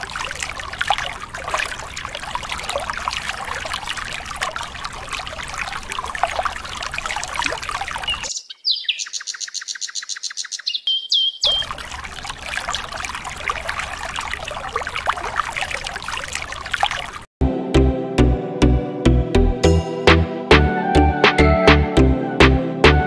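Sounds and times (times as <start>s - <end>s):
water splashing on plastic toys: 0.0s - 8.3s, 11.4s - 17.3s.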